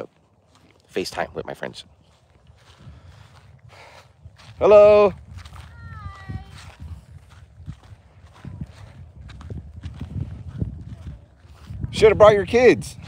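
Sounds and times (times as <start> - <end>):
wind rumble on microphone: 1.2 - 13.0
person saying hi: 5.7 - 6.7.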